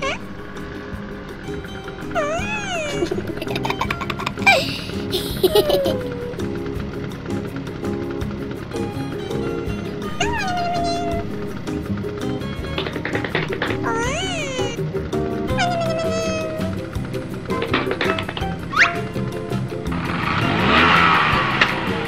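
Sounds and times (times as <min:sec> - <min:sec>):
cheerful background music: 0:00.0 - 0:22.0
squeaky cartoon exclamations: 0:02.2 - 0:03.0, 0:13.8 - 0:14.8, 0:15.5 - 0:16.7.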